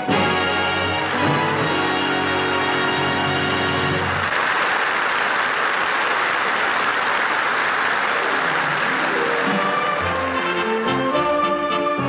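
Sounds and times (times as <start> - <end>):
orchestra playing: 0.0 - 4.3, 8.2 - 12.0
audience applauding: 0.0 - 12.0.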